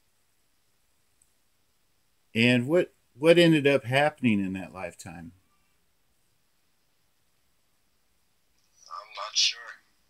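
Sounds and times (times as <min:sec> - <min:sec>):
soft quiet voice: 0:08.8 - 0:09.9.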